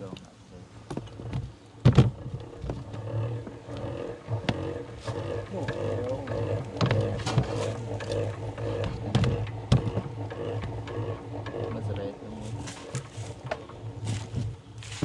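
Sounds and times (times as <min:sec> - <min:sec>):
honeybees buzzing: 0:01.2 - 0:15.0.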